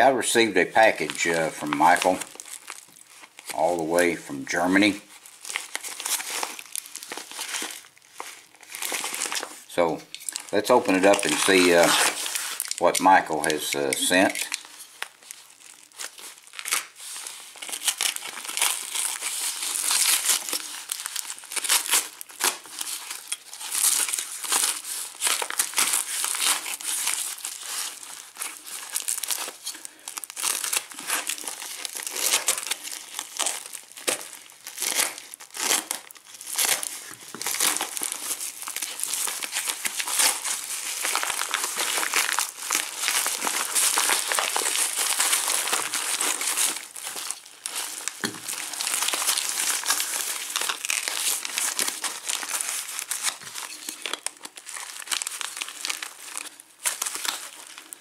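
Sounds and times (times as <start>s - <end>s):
wrapping crinkling: 0.0s - 58.0s
paper envelope tearing: 0.8s - 58.0s.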